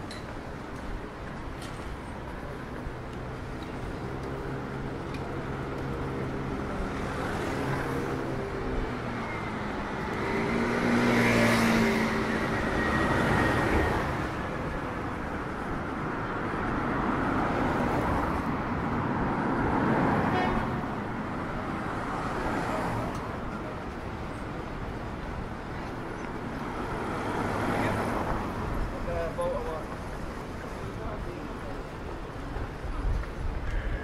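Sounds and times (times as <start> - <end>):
cars passing: 0.0 - 34.0.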